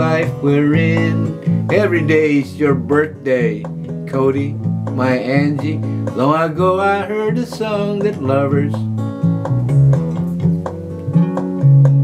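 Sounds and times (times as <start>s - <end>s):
acoustic guitar picked and strummed: 0.0s - 12.0s
low bass notes: 7.4s - 12.0s.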